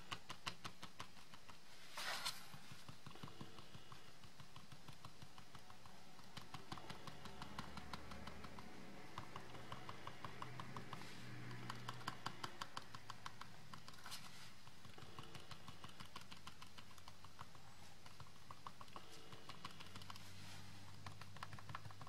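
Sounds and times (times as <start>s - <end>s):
foam applicator tapping on card: 0.0s - 1.7s, 2.4s - 22.0s.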